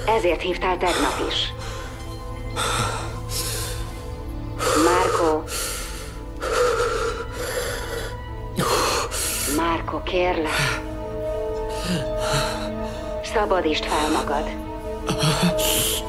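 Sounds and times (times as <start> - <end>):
low background music: 0.0 - 16.0.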